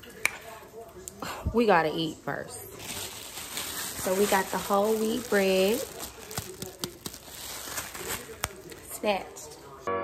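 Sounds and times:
plastic bag crinkling: 0:02.6 - 0:09.5.

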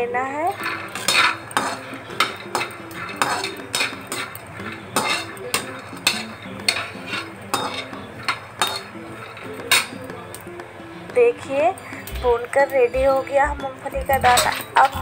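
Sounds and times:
peanuts rattling in a pan: 0:00.3 - 0:10.4
spatula scraping a pan: 0:00.4 - 0:10.4, 0:14.0 - 0:15.0.

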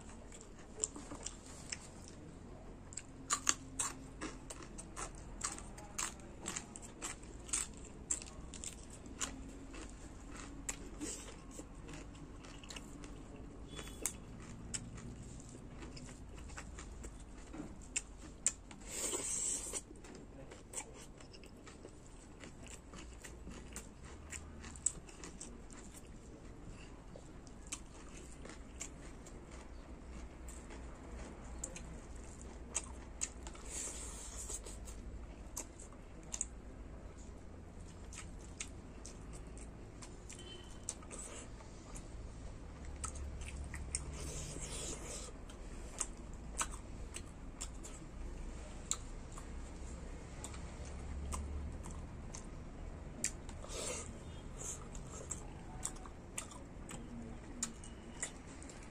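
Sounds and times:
person chewing food: 0:00.0 - 0:58.9.

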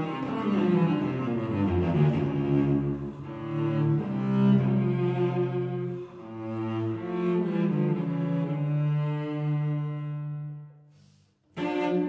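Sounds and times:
solo cello melody: 0:00.0 - 0:12.0.

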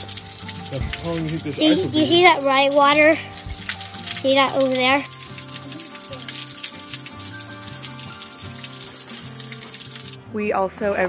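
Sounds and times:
small water drips: 0:00.0 - 0:10.2
water trickling: 0:00.0 - 0:10.4
soft background music: 0:00.0 - 0:11.0.

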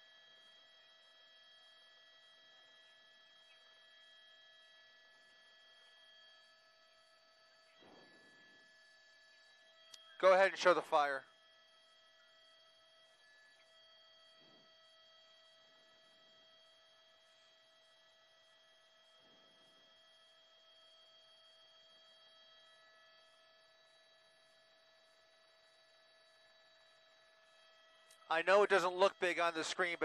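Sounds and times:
faint electronic hum: 0:00.0 - 0:30.0.

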